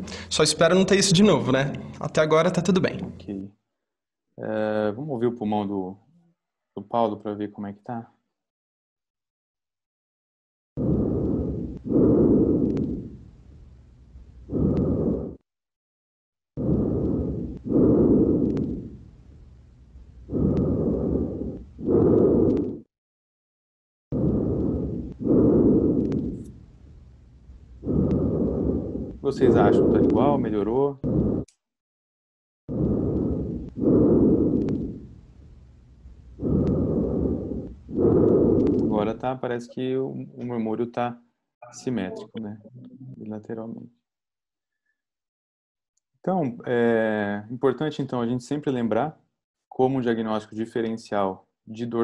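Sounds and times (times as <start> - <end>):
breath sounds through stethoscope: 0.0 - 0.4, 10.8 - 13.8, 14.4 - 15.4, 16.6 - 22.9, 24.1 - 31.6, 32.7 - 39.2.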